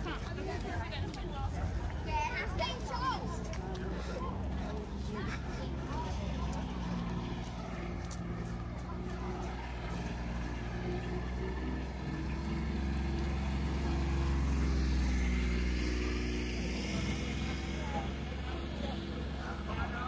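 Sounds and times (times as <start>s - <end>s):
crowd voices: 0.0s - 20.0s
utility vehicle engine driving past: 0.0s - 20.0s.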